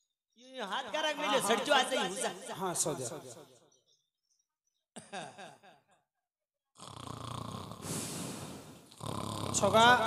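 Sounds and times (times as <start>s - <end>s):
person mock snoring: 6.8s - 10.0s.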